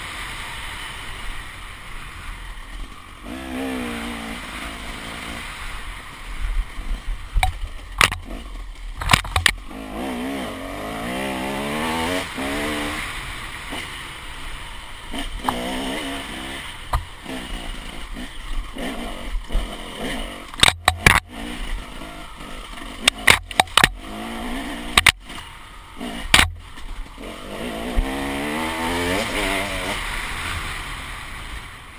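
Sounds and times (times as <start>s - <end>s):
motorcycle engine revving: 0.0s - 31.8s
sharp knocks: 20.6s - 21.3s, 23.1s - 24.0s, 24.9s - 25.2s, 26.3s - 26.6s.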